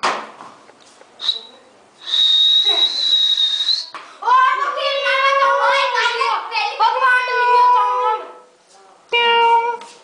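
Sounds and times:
high steady whistle: 0:01.2 - 0:04.0.

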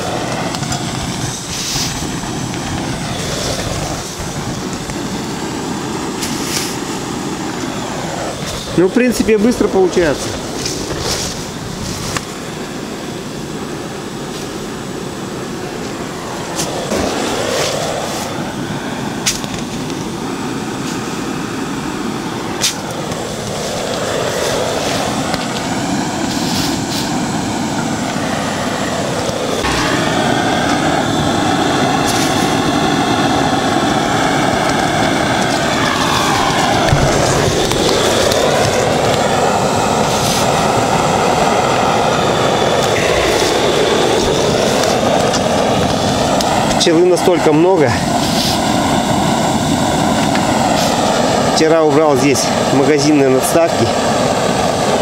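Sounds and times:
fogger jet hissing: 0:00.0 - 0:55.0.

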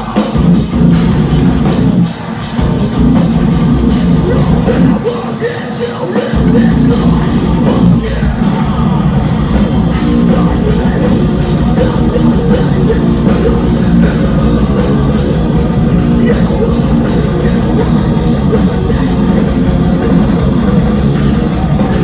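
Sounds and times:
distorted electric guitars: 0:00.0 - 0:22.0
drum kit pounding: 0:00.0 - 0:22.0.

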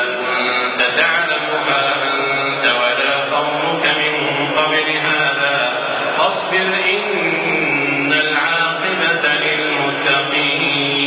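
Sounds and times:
man reciting in melodic chant: 0:00.0 - 0:11.0.

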